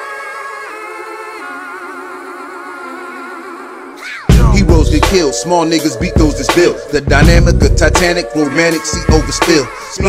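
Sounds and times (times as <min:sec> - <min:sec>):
sustained vocal harmonies: 0:00.0 - 0:10.0.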